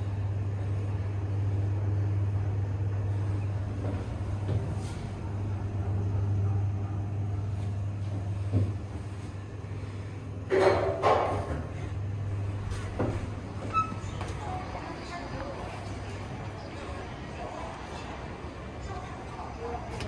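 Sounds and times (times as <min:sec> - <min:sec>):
elevator hum and rumble: 0:00.0 - 0:20.0.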